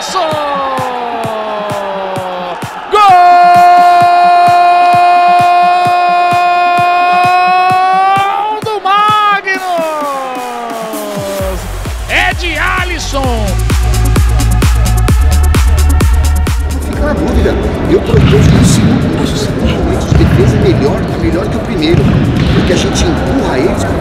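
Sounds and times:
commentator shouting: 0.0s - 13.8s
background music with steady beat: 0.0s - 24.0s
heavy electronic bass: 11.5s - 21.1s.

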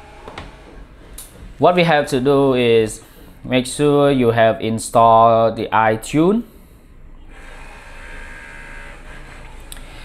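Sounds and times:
small motor buzzing hum: 7.2s - 10.0s.

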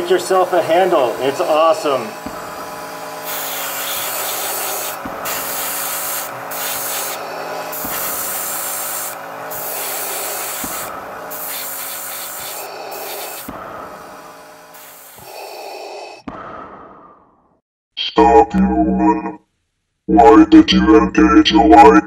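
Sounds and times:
airbrush spraying hiss: 0.0s - 16.2s
steady low hum: 0.0s - 16.7s.

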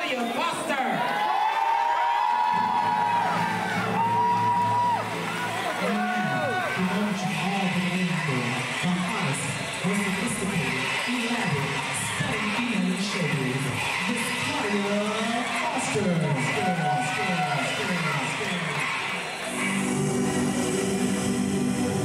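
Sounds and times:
audience cheering and whooping: 0.0s - 22.0s.

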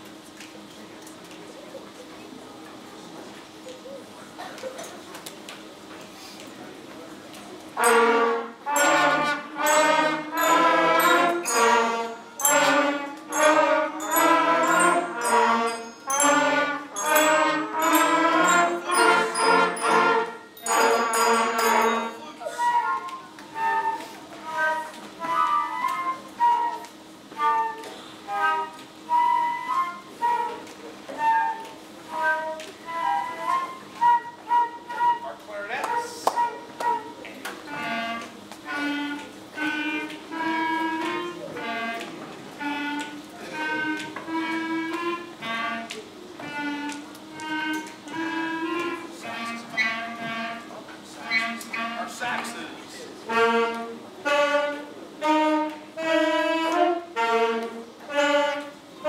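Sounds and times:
concert band playing: 7.8s - 31.5s, 35.9s - 52.2s
flutes playing melody: 7.8s - 52.4s, 53.2s - 59.0s
clarinets playing melody: 7.8s - 59.0s.

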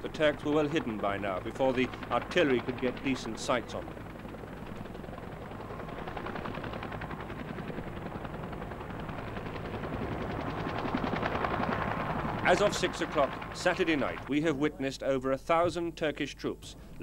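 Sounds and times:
helicopter rotor chopping: 0.0s - 14.6s.

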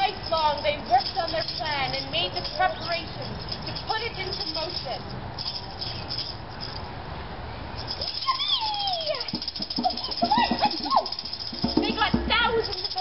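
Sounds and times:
hand-shaken rattle: 0.0s - 6.9s, 7.8s - 13.0s
short pitched calls: 5.4s - 6.8s.

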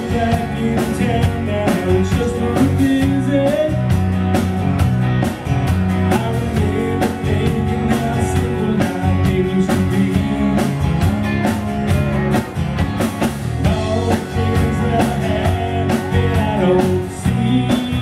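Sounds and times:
man singing: 0.0s - 4.0s, 6.0s - 11.1s, 13.6s - 18.0s
electric guitar: 0.0s - 18.0s
steady drum beat: 0.0s - 18.0s.

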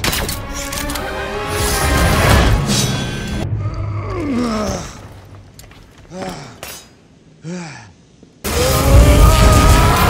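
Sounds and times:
person groaning in pain: 3.6s - 5.0s, 7.4s - 8.0s.

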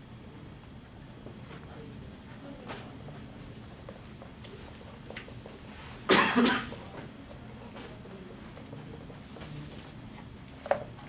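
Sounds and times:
person coughing: 6.1s - 6.8s.

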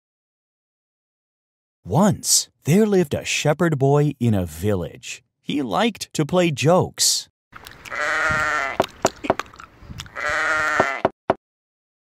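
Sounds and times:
sheep bleating: 7.9s - 8.8s, 10.1s - 11.2s.

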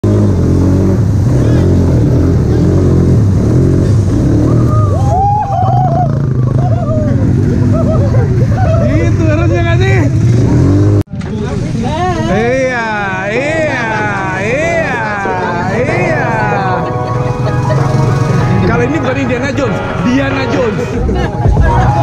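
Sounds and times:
atv engines running: 0.0s - 22.0s
people's voices: 4.5s - 22.0s.

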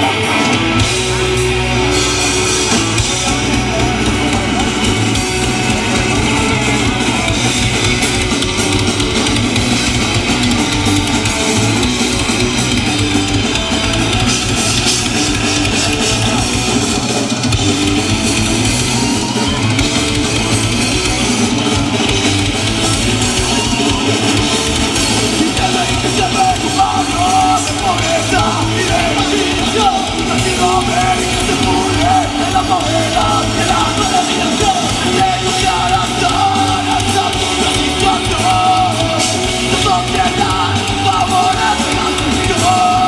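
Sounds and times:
punk band playing: 0.0s - 43.0s.

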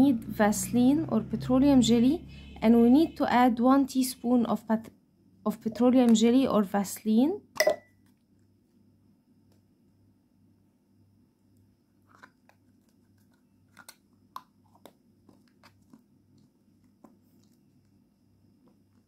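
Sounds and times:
spoon clicking on glass bowl: 7.6s - 7.9s.

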